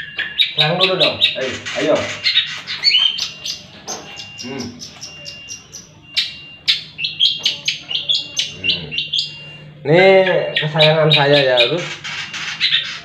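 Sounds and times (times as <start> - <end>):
bird chirping and clicking: 0.0 - 13.0.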